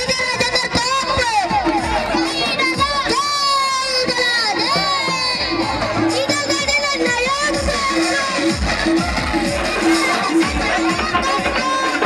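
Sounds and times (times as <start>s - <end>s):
boy shouting through loudspeaker: 0.0s - 8.6s, 9.8s - 12.0s
crowd: 0.0s - 12.0s.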